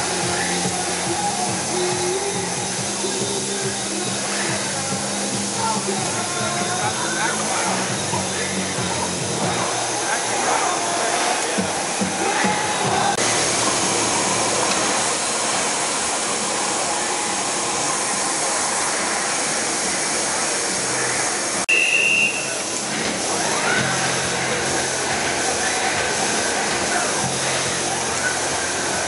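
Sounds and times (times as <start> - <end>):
crowd and machinery din: 0.0 - 29.0
faint voices: 0.0 - 29.0
short high tone: 21.7 - 22.6.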